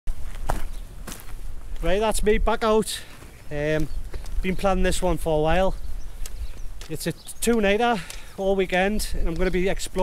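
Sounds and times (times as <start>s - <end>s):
footsteps: 0.1s - 10.0s
man speaking: 1.8s - 5.8s, 6.8s - 10.0s.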